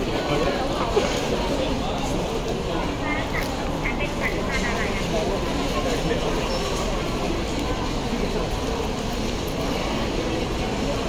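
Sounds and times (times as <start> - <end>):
indistinct crowd chatter: 0.0 - 11.0.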